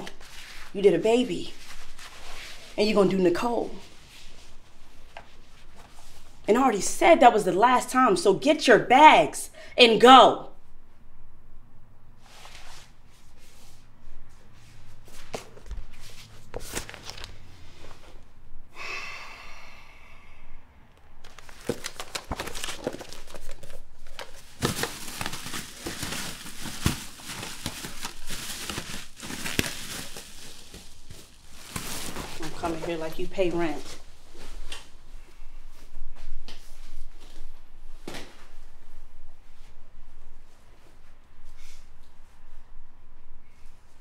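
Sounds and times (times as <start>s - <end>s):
paper crinkling and rustling: 15.1s - 18.2s, 21.2s - 34.8s.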